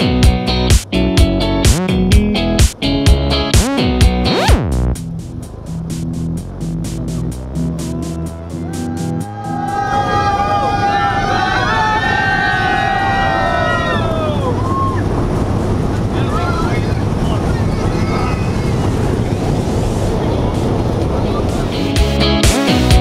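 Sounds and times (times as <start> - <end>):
airplane engine and airflow noise: 0.0 - 22.8.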